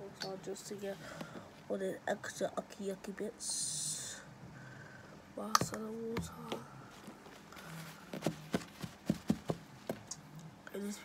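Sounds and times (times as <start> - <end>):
knocks and taps on wooden floor: 8.2 - 10.1.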